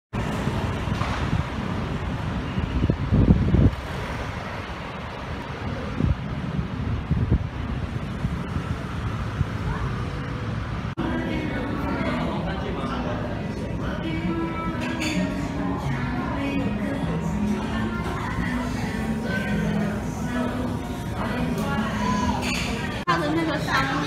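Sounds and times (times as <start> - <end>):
road traffic rumble: 0.1 - 24.0.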